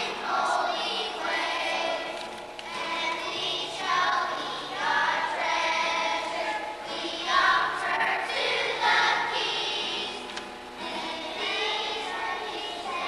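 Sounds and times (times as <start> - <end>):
children's choir singing: 0.0 - 13.0.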